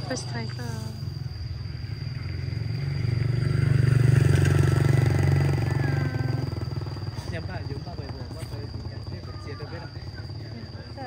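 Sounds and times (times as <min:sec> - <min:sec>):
vehicle engine passing by: 0:00.0 - 0:10.9.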